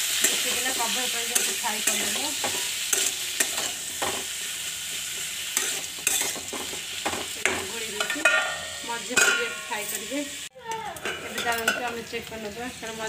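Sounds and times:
vegetables sizzling in hot oil: 0.0s - 13.0s
metal spatula scraping pan: 0.1s - 10.2s.

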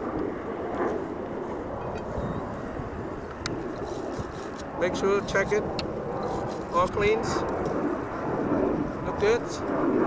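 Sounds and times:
distant engine rumble: 0.0s - 9.7s.

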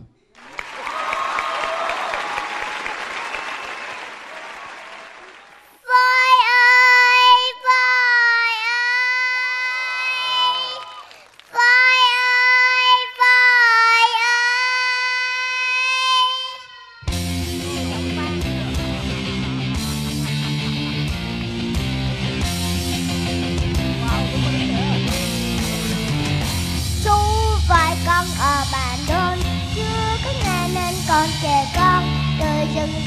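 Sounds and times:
audience applause: 0.3s - 5.8s, 10.1s - 11.6s
girl singing high held notes: 5.8s - 11.0s, 11.6s - 17.1s, 27.0s - 33.0s.

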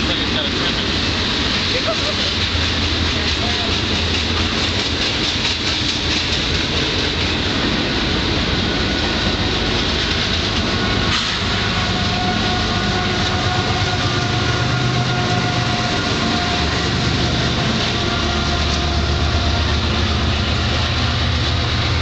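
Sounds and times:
diesel locomotive whine: 0.0s - 22.0s
train wheels clacking on rails: 0.0s - 22.0s.

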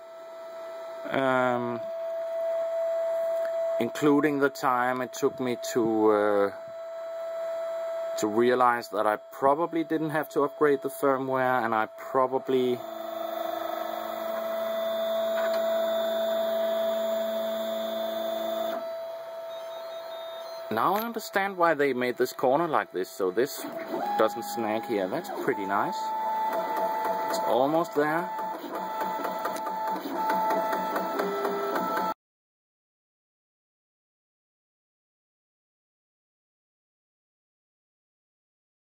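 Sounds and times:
three d printer whine: 0.0s - 32.2s.

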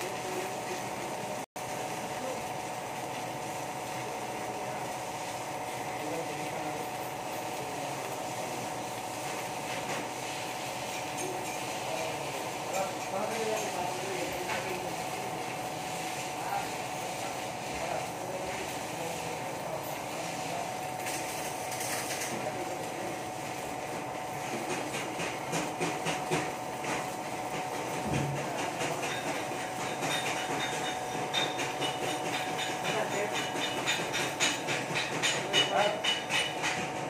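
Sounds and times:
welding arc sizzling crackle: 0.0s - 37.0s.

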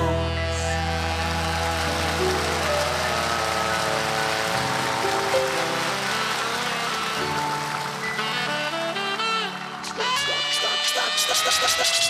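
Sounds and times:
live band playing pop music: 0.0s - 12.0s.

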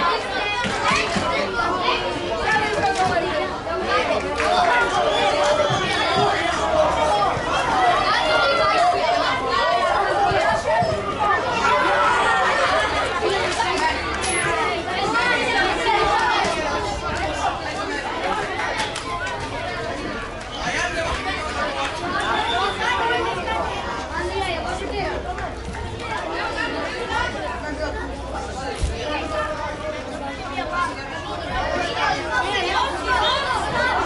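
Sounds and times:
people talking and calling out: 0.0s - 34.0s.

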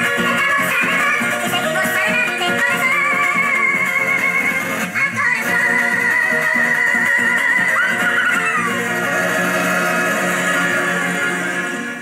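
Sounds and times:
sped-up high singing voice: 0.0s - 12.0s
folk band playing: 7.0s - 12.0s.

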